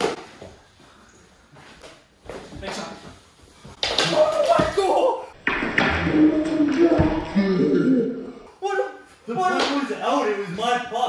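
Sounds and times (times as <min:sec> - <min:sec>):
hockey sticks hitting ball on wood: 0:03.6 - 0:07.3.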